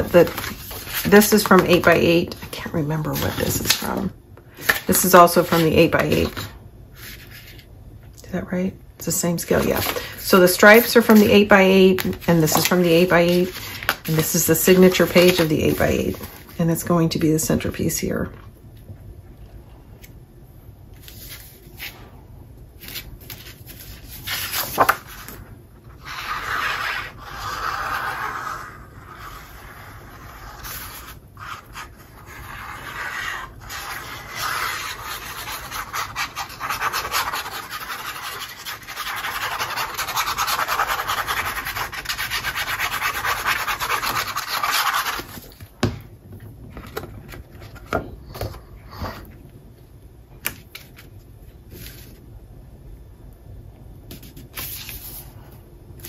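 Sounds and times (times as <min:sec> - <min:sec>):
paper handled and rubbed: 0:00.0 - 0:02.5, 0:03.1 - 0:04.0, 0:09.5 - 0:16.6, 0:22.8 - 0:25.4.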